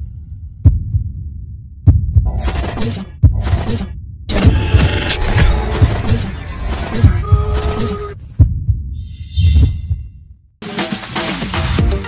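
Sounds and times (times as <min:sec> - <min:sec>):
sharp heavy hits: 0:04.3 - 0:08.0.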